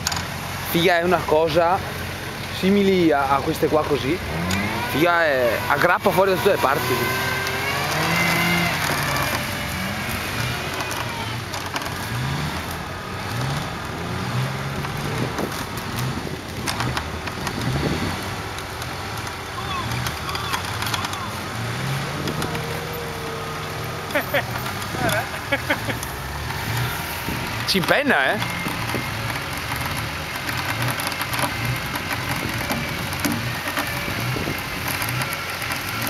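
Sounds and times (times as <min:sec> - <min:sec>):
off-road engine revving: 0:00.0 - 0:36.0
people's voices: 0:08.1 - 0:11.7, 0:19.2 - 0:28.9.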